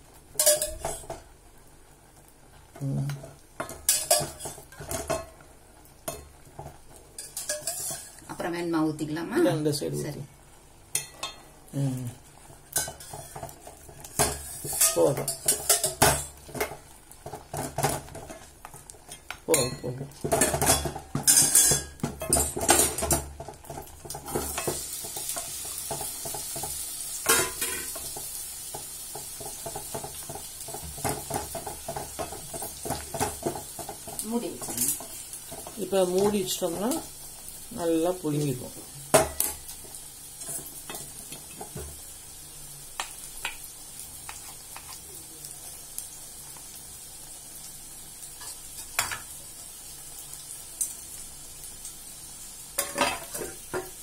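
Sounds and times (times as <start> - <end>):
wooden spatula scraping steel pot: 7.2 - 8.3, 12.7 - 16.7.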